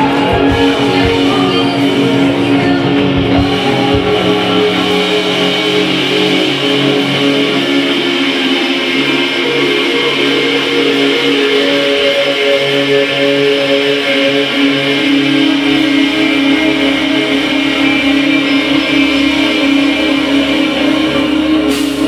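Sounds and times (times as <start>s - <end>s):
deep bass: 0.0s - 22.0s
electric guitars ringing notes: 0.0s - 22.0s.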